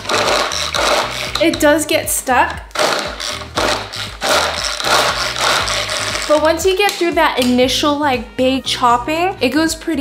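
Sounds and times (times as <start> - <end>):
food chopper blades rattling: 0.0 - 1.8, 2.7 - 7.0.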